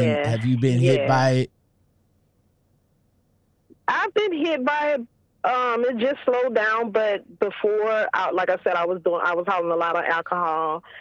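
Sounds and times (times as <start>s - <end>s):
woman speaking: 0.0s - 1.3s, 3.7s - 11.0s.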